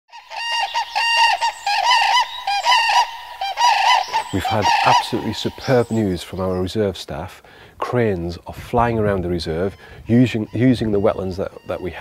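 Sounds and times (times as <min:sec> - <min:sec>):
flock of birds calling: 0:00.1 - 0:06.8, 0:09.4 - 0:12.0.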